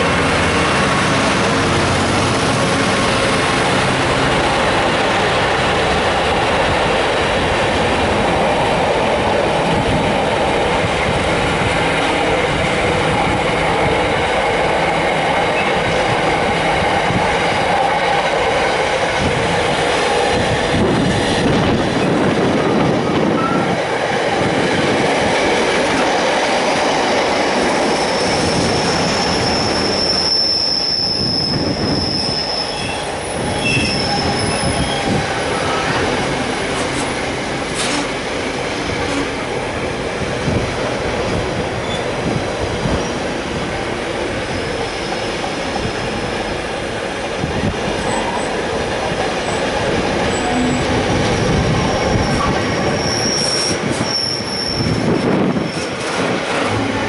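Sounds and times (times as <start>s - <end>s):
train wheels rumbling on rails: 0.0s - 57.0s
high wheel squeal: 27.8s - 35.9s, 50.3s - 56.0s.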